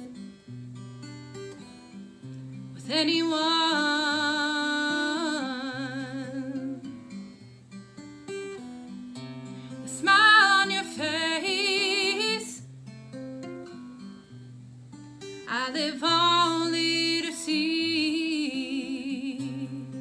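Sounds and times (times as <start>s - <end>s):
acoustic guitar playing: 0.0s - 20.0s
woman singing: 2.7s - 7.0s, 9.8s - 12.6s, 15.4s - 20.0s.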